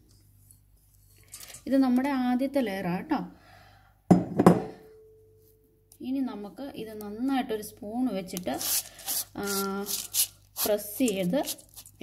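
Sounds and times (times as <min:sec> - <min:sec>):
woman speaking: 0:01.7 - 0:03.4, 0:06.0 - 0:11.7.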